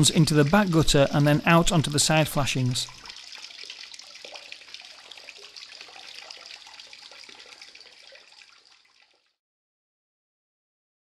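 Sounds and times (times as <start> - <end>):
water trickling into gutter: 0.0 - 9.4.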